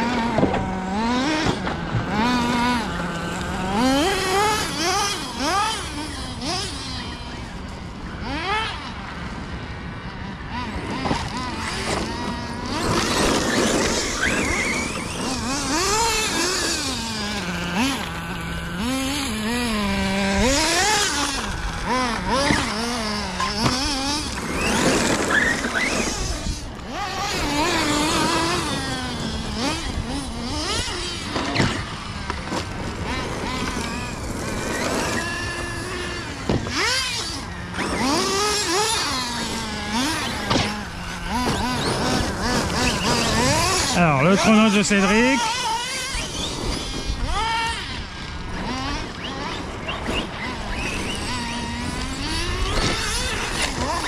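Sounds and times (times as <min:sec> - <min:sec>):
electric motors whining: 0:00.0 - 0:54.0.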